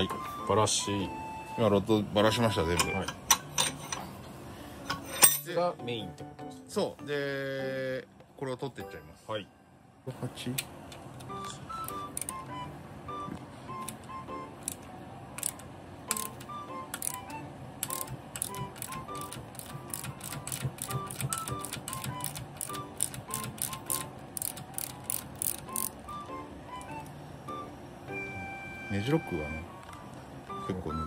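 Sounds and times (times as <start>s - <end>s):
background music: 0.0s - 4.0s, 4.9s - 8.2s, 10.8s - 31.0s
ratchet wrench clicking: 15.4s - 26.0s.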